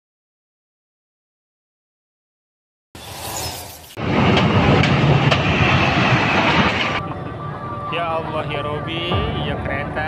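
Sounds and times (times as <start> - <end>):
train rumbling and rattling: 3.9 - 10.0.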